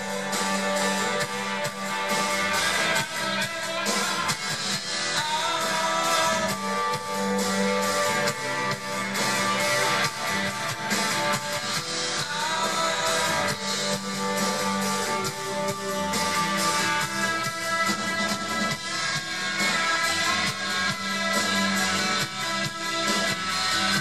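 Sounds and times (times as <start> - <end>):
drum kit: 0.0 - 24.0
electric bass: 0.0 - 24.0
electric guitar: 0.0 - 24.0.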